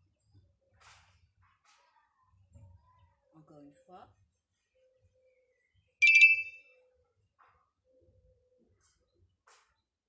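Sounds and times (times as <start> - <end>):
bright metallic chime: 6.0 - 6.6.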